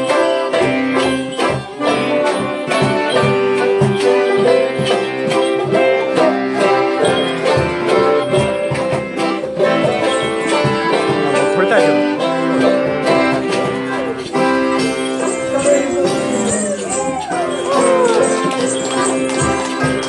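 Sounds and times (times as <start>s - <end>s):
accordion chords: 0.0s - 20.0s
plucked banjo notes: 0.0s - 20.0s
frame drum beat: 0.1s - 20.0s.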